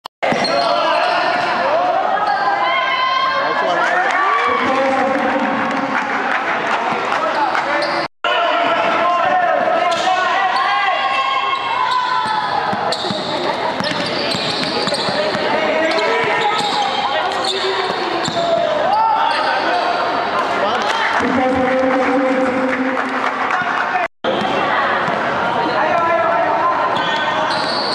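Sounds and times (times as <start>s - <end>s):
babble of many voices: 0.2s - 27.9s
basketball bouncing on court: 12.0s - 17.0s, 17.8s - 18.7s.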